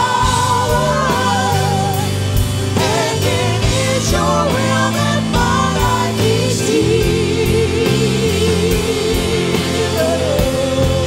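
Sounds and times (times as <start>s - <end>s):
church band playing: 0.0s - 11.0s
voices singing along: 0.0s - 11.0s.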